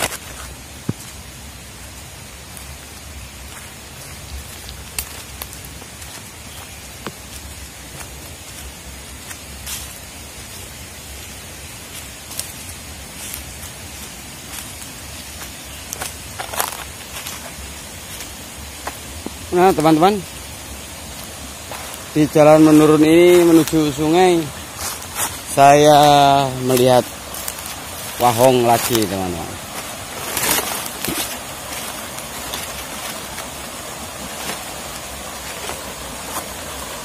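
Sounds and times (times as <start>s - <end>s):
footsteps in dry leaves: 0.0s - 37.0s
stream rushing over rocks: 0.0s - 37.0s.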